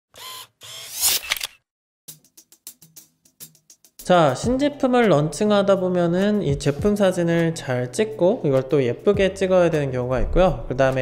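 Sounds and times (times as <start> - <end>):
quick clicks: 0.8 - 1.6.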